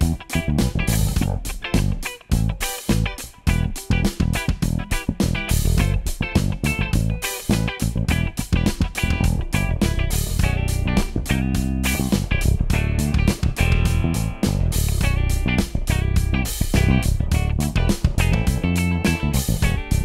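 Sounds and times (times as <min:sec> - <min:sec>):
electric bass played fingerstyle: 0:00.0 - 0:20.0
electric guitar played with a pick: 0:00.0 - 0:20.0.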